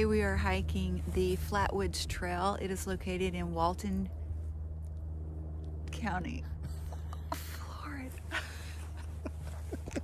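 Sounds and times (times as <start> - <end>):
steady low hum: 0.0 - 10.0
soft breathy laughter: 8.3 - 10.0.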